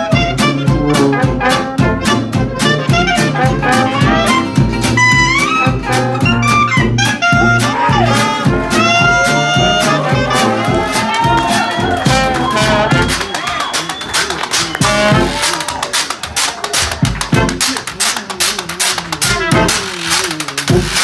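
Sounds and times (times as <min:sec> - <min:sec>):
tuba: 0:00.0 - 0:13.3, 0:14.2 - 0:15.5, 0:17.2 - 0:21.0
clarinet: 0:00.0 - 0:15.7, 0:18.8 - 0:21.0
guitar: 0:00.0 - 0:15.8, 0:17.0 - 0:21.0
trumpet: 0:00.0 - 0:16.1, 0:17.0 - 0:18.2, 0:18.8 - 0:21.0.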